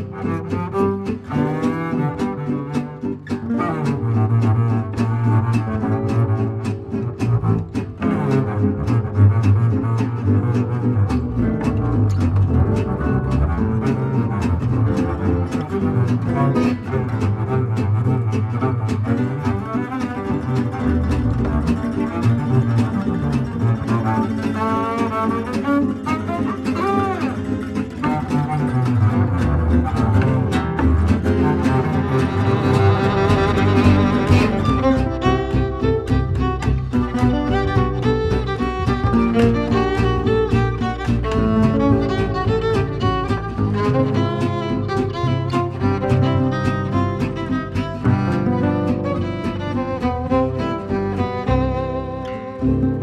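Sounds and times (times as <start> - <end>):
double bass lead line: 0.0 - 53.0
melodic string lines: 0.0 - 53.0.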